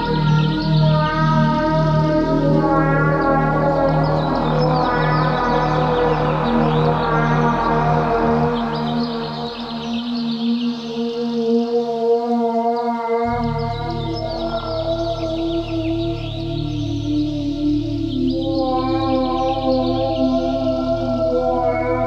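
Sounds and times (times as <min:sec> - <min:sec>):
pulsing low bass: 0:00.0 - 0:10.9, 0:13.3 - 0:22.0
ambient synthesizer chords: 0:00.0 - 0:22.0.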